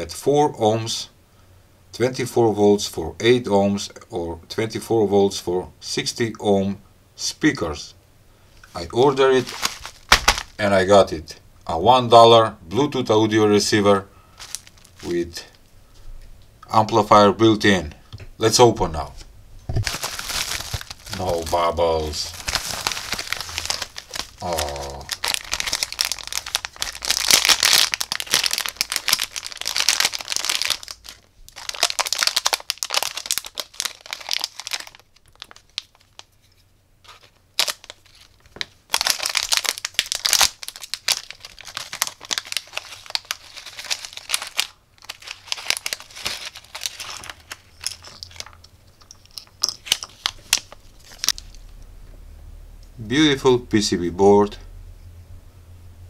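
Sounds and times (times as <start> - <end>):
plastic packaging crinkling: 8.6 - 10.6, 14.3 - 15.7, 19.7 - 51.8.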